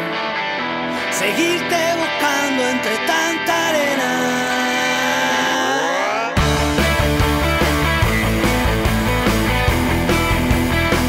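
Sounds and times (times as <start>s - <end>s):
distorted electric guitar: 0.0s - 11.0s.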